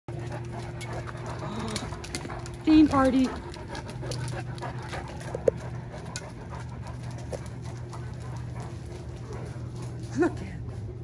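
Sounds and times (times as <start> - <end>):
dog panting: 0.1 - 11.0
steady low hum: 0.1 - 11.0.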